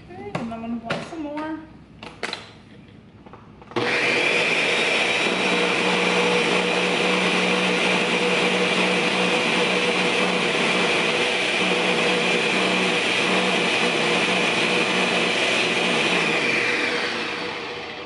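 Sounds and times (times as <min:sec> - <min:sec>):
blender running: 0:03.7 - 0:18.0.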